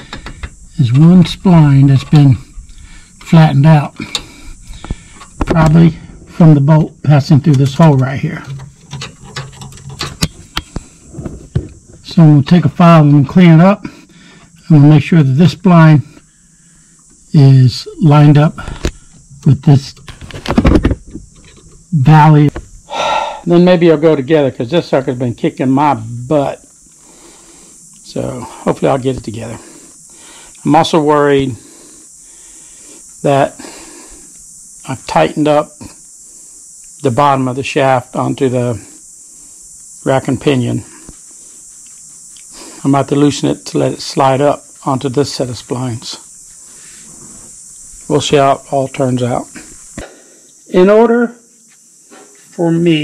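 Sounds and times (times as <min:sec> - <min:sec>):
steady background hiss: 0:00.0 - 0:53.0.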